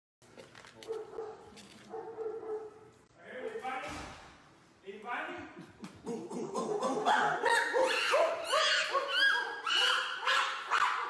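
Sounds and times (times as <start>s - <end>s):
chimpanzee hooting: 5.9s - 11.0s.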